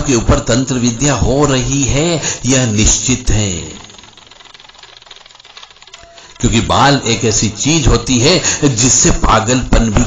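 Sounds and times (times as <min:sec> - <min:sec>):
fluttering background hiss: 0:00.0 - 0:09.3.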